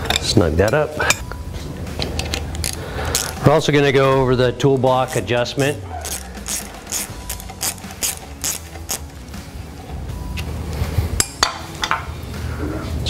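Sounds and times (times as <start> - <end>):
ratcheting metal clicks: 2.0 - 3.4, 4.6 - 9.2.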